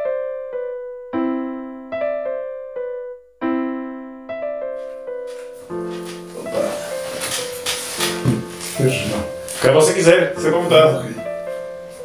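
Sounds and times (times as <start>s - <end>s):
soft piano music: 0.0s - 12.0s
book pages rustling: 4.8s - 10.0s
man speaking: 8.8s - 11.3s.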